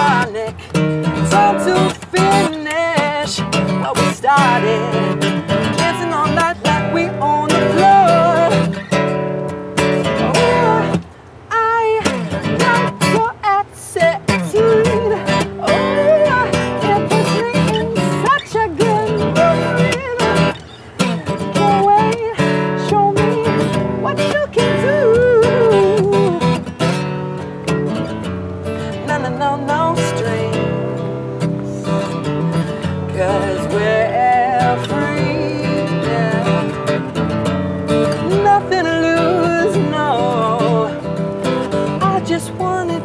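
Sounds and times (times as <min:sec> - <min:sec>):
person singing: 0:00.0 - 0:08.9, 0:10.0 - 0:26.7, 0:28.9 - 0:37.2, 0:38.1 - 0:43.0
strummed acoustic guitar: 0:00.0 - 0:43.0.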